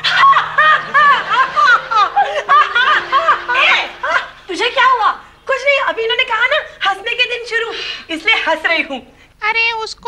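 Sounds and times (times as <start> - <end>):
woman laughing: 0.0 - 4.4.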